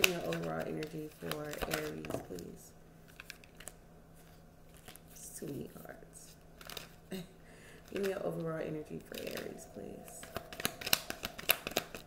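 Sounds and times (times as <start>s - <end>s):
cards shuffling: 0.0s - 5.2s, 6.6s - 7.1s, 10.2s - 12.0s
steady low hum: 0.0s - 12.0s.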